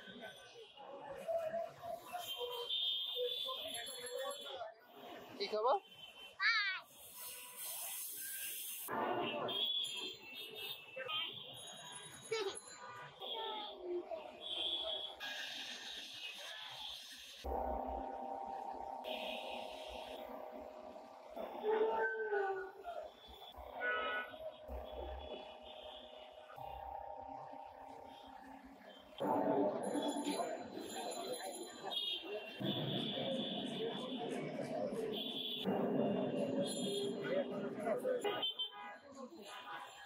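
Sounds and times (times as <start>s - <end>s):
indistinct voices and chatter: 0.0s - 40.0s
vehicle horns: 23.2s - 30.4s, 31.8s - 37.5s, 38.1s - 39.1s.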